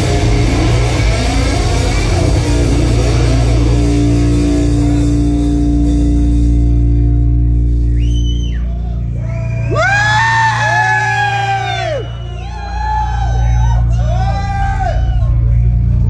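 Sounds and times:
low guitar drone: 0.0 - 16.0
people yelling: 8.7 - 15.5.

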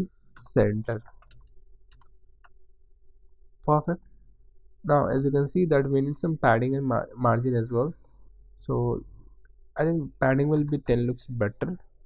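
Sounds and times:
low steady hum: 0.0 - 12.0
computer keyboard keystrokes: 1.1 - 2.6.

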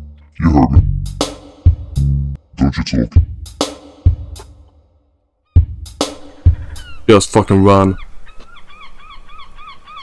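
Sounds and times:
bird honking calls: 5.5 - 10.0.

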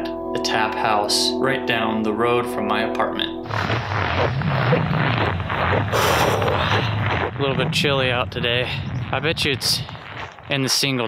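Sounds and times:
wind buffeting microphone: 3.4 - 11.0.

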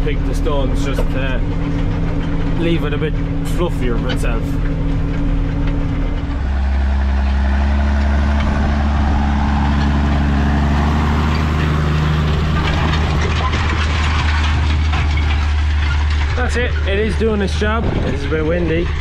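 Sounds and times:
tractor diesel engine under load: 0.0 - 19.0
wind noise on microphone: 17.6 - 19.0.

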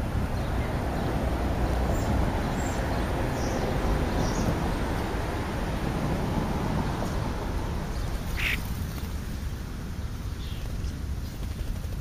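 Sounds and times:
bird call: 8.3 - 8.6.

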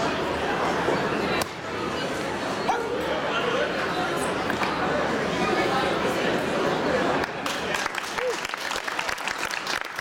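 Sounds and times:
spectators chattering in gymnasium: 0.0 - 10.0.

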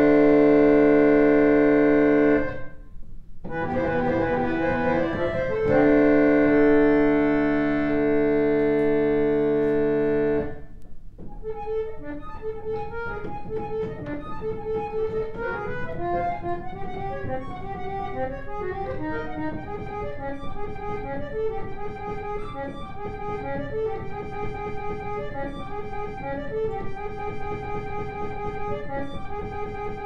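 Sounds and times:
reed organs playing chords: 0.0 - 2.7, 3.5 - 30.0.

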